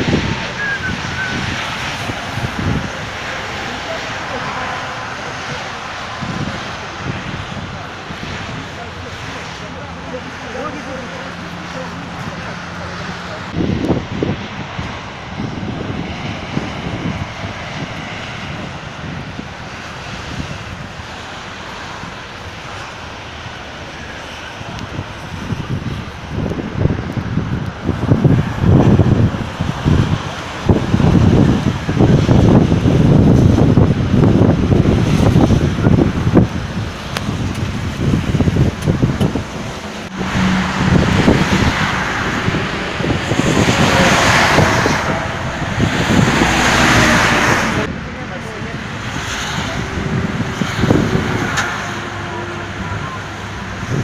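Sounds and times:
road traffic rumbling: 0:00.0 - 0:54.0
wind gusting on microphone: 0:00.0 - 0:54.0.

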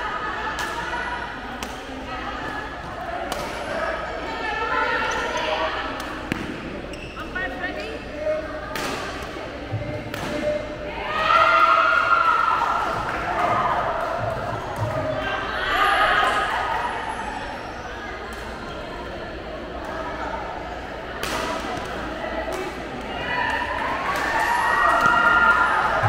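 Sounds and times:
people's voices: 0:00.0 - 0:26.0.

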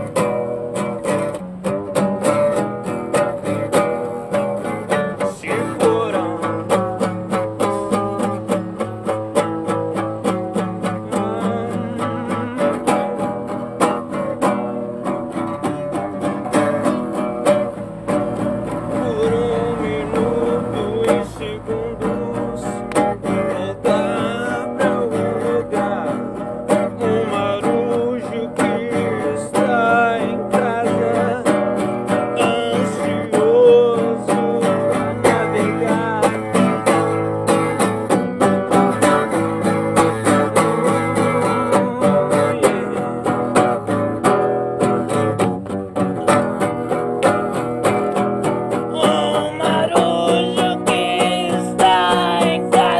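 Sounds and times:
acoustic guitar strumming: 0:00.0 - 0:52.9.

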